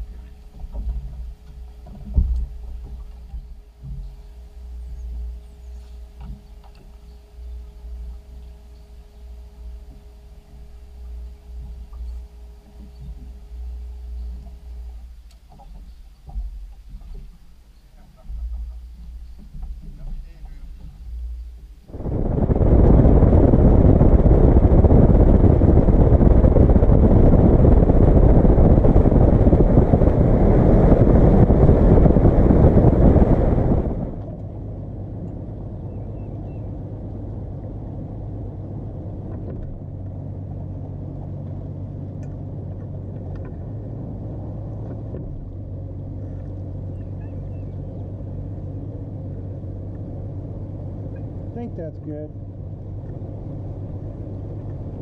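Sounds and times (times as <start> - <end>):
boat engine at speed: 0.0 - 55.0
outboard motor idling: 0.0 - 55.0
wind rushing: 21.9 - 34.4.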